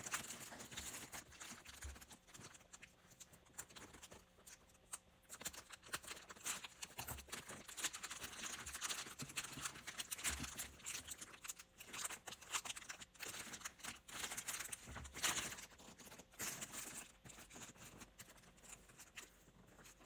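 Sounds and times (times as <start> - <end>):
plastic wrapping crinkling: 0.0 - 20.0.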